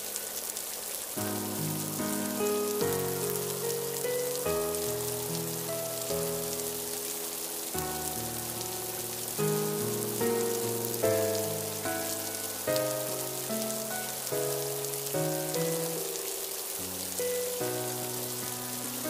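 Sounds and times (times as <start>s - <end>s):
rain on a hard surface: 0.0s - 19.0s
slow music of held notes: 0.0s - 19.0s.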